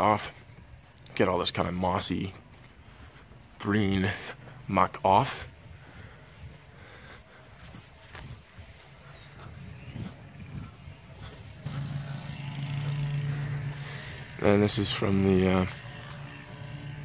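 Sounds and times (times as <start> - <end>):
engine drone: 0.0 - 17.0
outdoor air rumble: 0.0 - 17.0.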